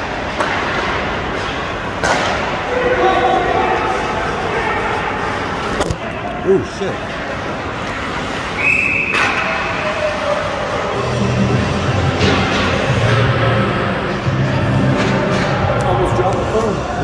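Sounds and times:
referee's whistle: 0:08.6 - 0:09.4
music: 0:10.8 - 0:16.5.

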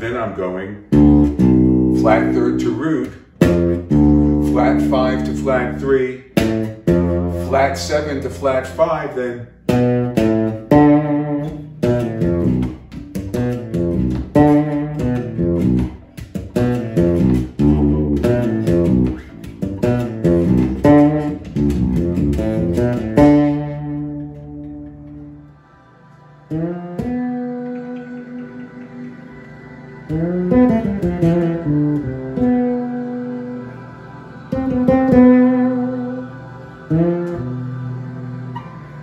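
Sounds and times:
fretless electric bass plucked notes: 0:00.0 - 0:25.5, 0:26.5 - 0:29.3, 0:30.1 - 0:33.7, 0:34.5 - 0:39.0.

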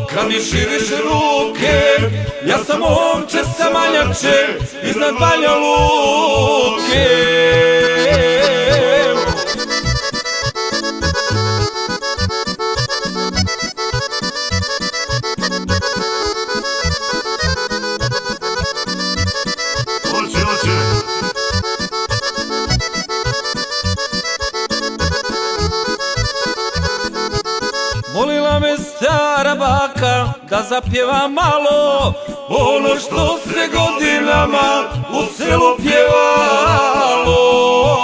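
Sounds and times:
person singing: 0:00.0 - 0:09.8, 0:20.0 - 0:21.2, 0:28.1 - 0:38.0
accordion fast melody: 0:00.0 - 0:30.3, 0:32.1 - 0:38.0
steady bass beat: 0:06.9 - 0:07.2, 0:08.0 - 0:10.0, 0:20.1 - 0:22.9.

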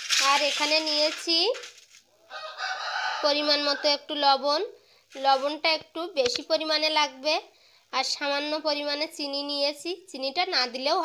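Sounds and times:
chicken calling: 0:02.1 - 0:04.1.

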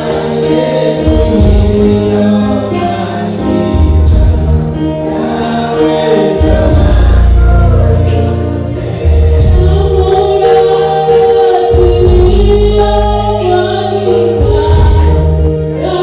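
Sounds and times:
electronic keyboard playing: 0:00.0 - 0:16.0
group of voices singing: 0:00.0 - 0:16.0.

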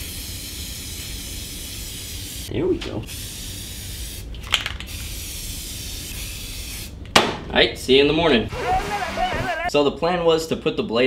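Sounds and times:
spray paint can hissing: 0:00.0 - 0:02.5, 0:03.1 - 0:07.0.

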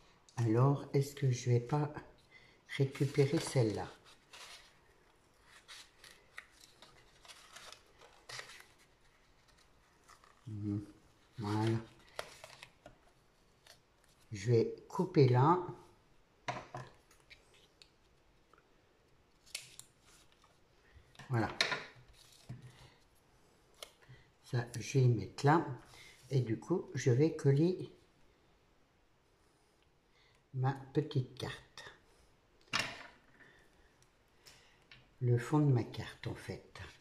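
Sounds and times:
paper card rustling: 0:02.8 - 0:14.3.

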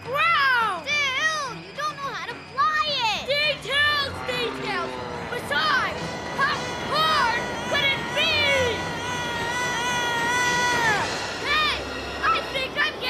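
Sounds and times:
background music: 0:00.0 - 0:13.0
cartoon voices shrieking and wailing: 0:00.0 - 0:13.0.

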